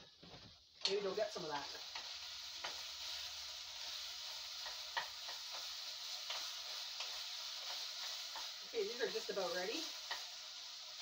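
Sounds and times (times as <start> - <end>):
food sizzling in frying pan: 0.0 - 11.0.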